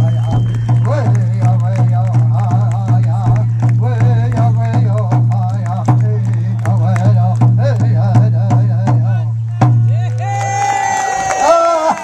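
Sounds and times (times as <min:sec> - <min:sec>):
high held calls: 0:00.0 - 0:06.7
drumbeats: 0:00.0 - 0:10.6.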